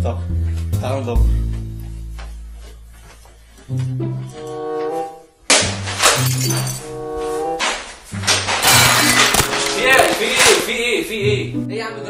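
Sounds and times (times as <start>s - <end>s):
music with low bass notes: 0.0s - 4.3s
loud crash of something breaking: 8.5s - 10.6s.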